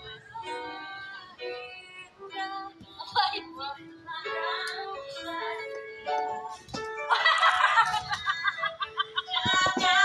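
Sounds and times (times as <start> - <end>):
woman laughing: 7.1 - 10.0.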